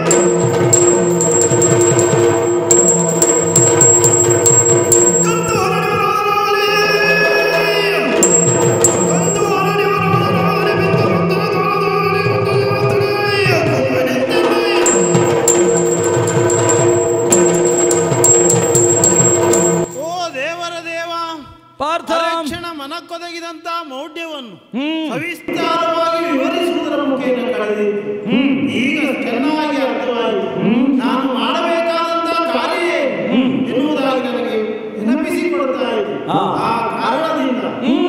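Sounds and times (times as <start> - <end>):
barrel drum rhythm: 0.0 - 6.0, 8.2 - 11.2, 14.7 - 20.4
hand cymbals struck: 0.0 - 6.3, 8.2 - 11.1, 14.6 - 20.5.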